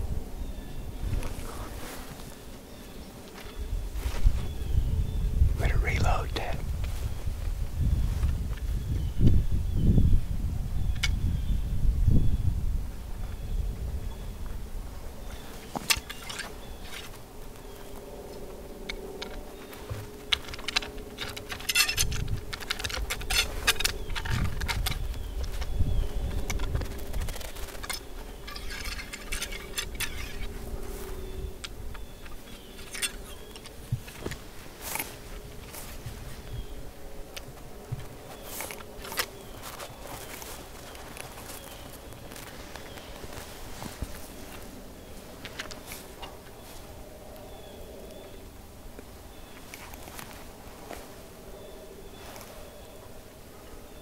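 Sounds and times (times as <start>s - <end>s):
clothing and gear rustling: 1.1s - 4.7s, 14.8s - 48.3s, 49.1s - 53.3s.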